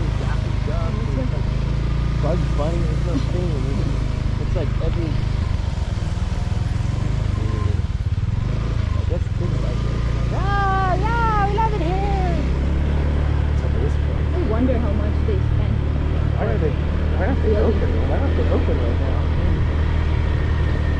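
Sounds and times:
road vehicle rumble: 0.0s - 20.9s.

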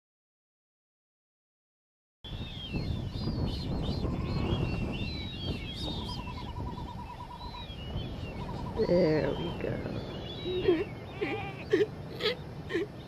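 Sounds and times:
chirping bird calls: 2.3s - 13.0s.

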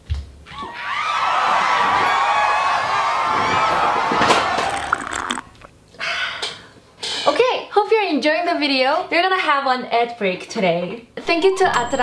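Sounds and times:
crowd cheering and screaming: 0.6s - 5.4s.

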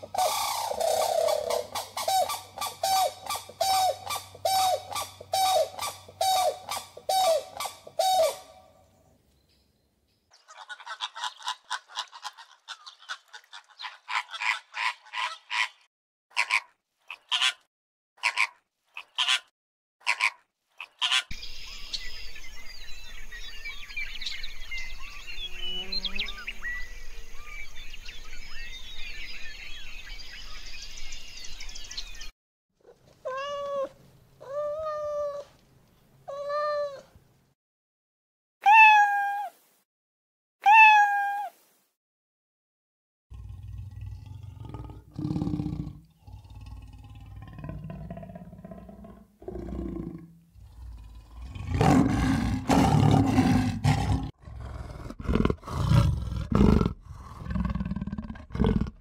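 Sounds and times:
waterbird chatter: 10.3s - 17.6s
cat meowing: 33.2s - 35.5s, 36.3s - 37.1s, 38.6s - 39.6s, 40.6s - 41.6s.

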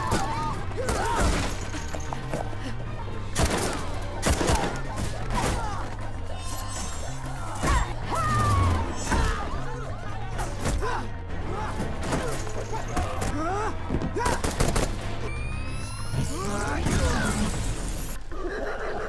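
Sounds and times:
film music score: 0.0s - 19.0s.

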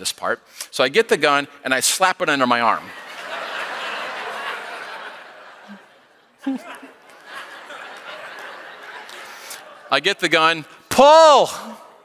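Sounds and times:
audience laughing: 2.8s - 10.4s.

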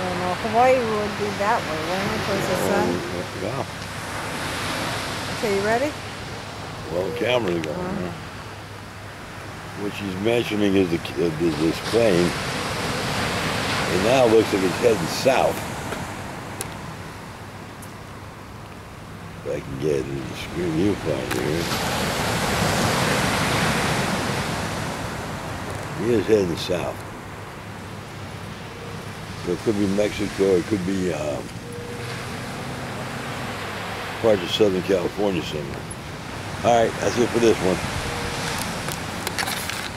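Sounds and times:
distant ocean surf: 0.0s - 39.9s
surf breaking on beach: 9.8s - 16.2s, 20.4s - 27.0s.

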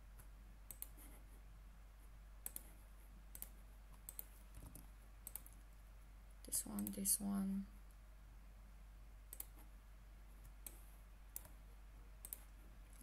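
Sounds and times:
faint low hum: 0.0s - 13.0s
computer mouse clicking: 0.2s - 1.2s, 2.4s - 5.7s, 6.7s - 7.1s, 9.3s - 9.7s, 10.4s - 11.6s, 12.2s - 13.0s.

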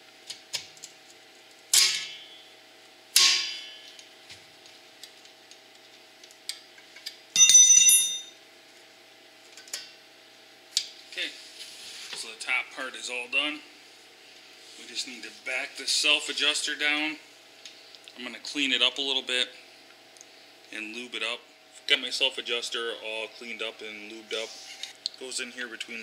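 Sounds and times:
bell-like metallic ring: 7.4s - 8.4s.

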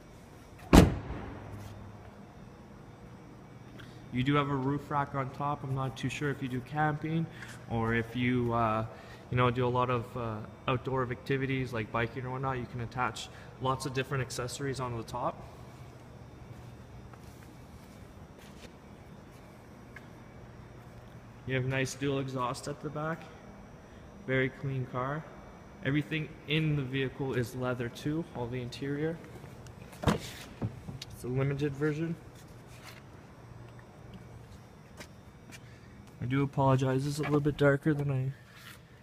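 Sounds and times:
faint low hum: 0.0s - 39.0s
car door slamming: 0.7s - 1.5s
soft scuffs: 1.4s - 2.1s, 15.5s - 20.0s, 29.3s - 30.9s.

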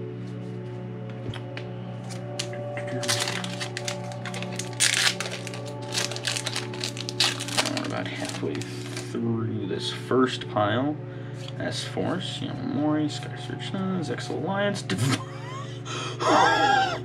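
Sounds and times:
background music: 0.0s - 17.0s
foil wrapper crinkling and tearing: 2.1s - 9.2s.

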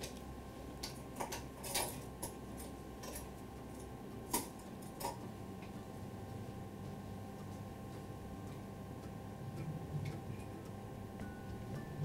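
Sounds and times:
low room hum: 0.0s - 12.0s
faint clicks and taps: 4.1s - 11.3s.

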